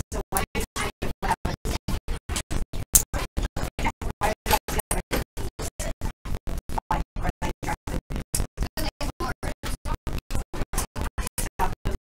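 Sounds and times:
stuttering room sound: 0:00.0 - 0:12.0.

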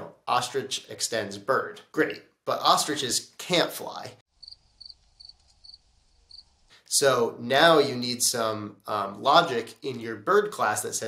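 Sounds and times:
cricket chirping: 0:04.3 - 0:06.5.

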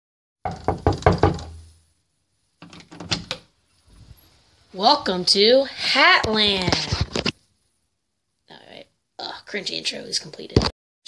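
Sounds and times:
knocking on a door: 0:00.4 - 0:01.6.

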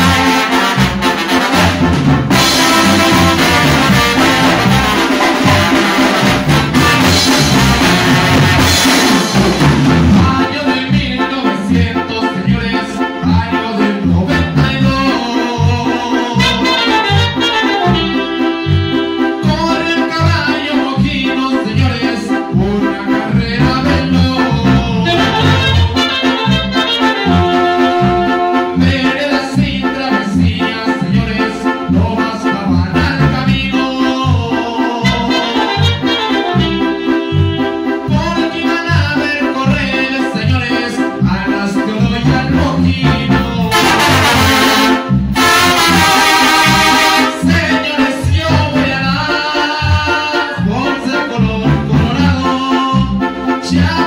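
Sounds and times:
saxophone: 0:00.0 - 0:08.9, 0:15.2 - 0:20.0, 0:23.8 - 0:30.1, 0:33.8 - 0:38.4, 0:43.5 - 0:50.6
drum kit: 0:00.0 - 0:11.9, 0:23.4 - 0:29.2, 0:42.2 - 0:49.0
bouncing bass beat: 0:00.0 - 0:29.8, 0:30.4 - 0:54.0
keyboard: 0:00.0 - 0:54.0
trombones: 0:00.0 - 0:54.0.

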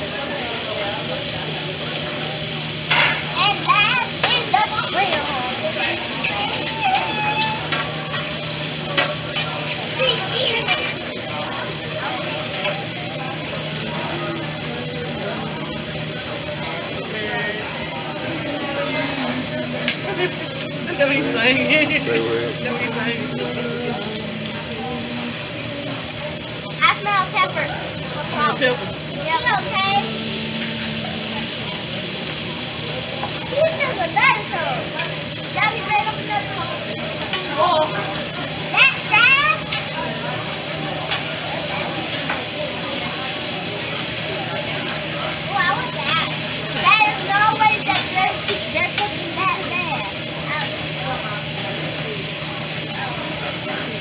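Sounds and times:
diners chattering: 0:00.0 - 0:54.0
food sizzling on a griddle: 0:00.0 - 0:54.0.

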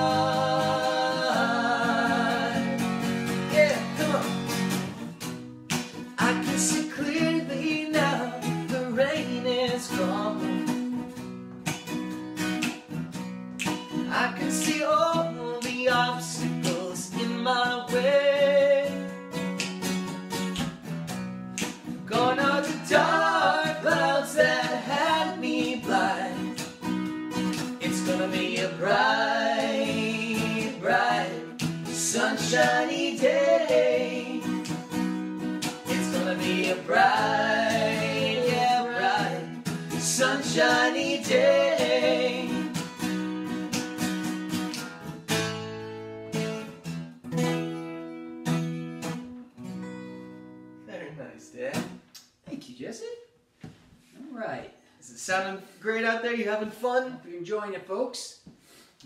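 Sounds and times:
men singing: 0:00.0 - 0:04.4, 0:06.2 - 0:10.6, 0:22.1 - 0:26.6, 0:27.8 - 0:34.8, 0:35.8 - 0:42.9
acoustic guitar strumming: 0:00.0 - 0:51.1.

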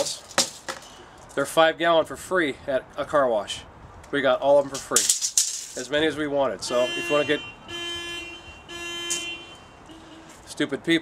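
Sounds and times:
vehicle horn honking: 0:06.6 - 0:10.4.

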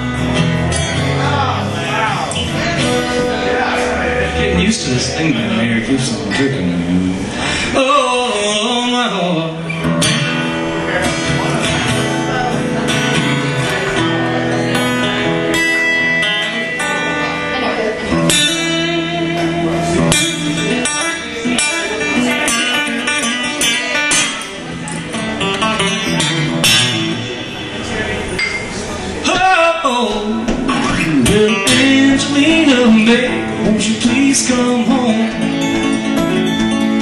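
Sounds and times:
guitar strumming: 0:00.0 - 0:37.0
live country band playing: 0:00.0 - 0:37.0.

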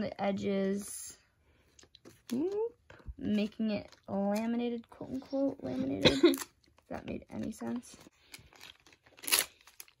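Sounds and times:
tape crinkling: 0:01.7 - 0:05.5, 0:06.2 - 0:10.0
tape ripping: 0:08.3 - 0:10.0.

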